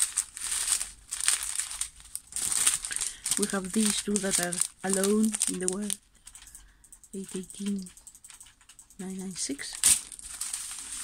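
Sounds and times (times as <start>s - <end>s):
plastic packaging crinkling: 0.0s - 6.0s, 9.6s - 11.0s.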